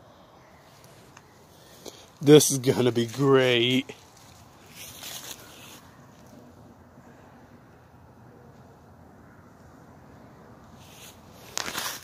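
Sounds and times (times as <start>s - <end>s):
footsteps rustling dry leaves: 2.6s - 6.3s, 10.8s - 12.0s.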